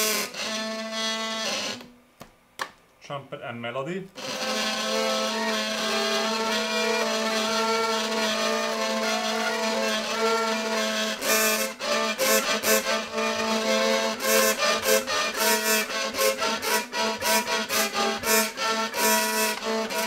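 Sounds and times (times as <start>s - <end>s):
hurdy gurdy melody over drone: 4.2s - 20.0s
rhythmic buzzing pulses: 4.2s - 20.0s.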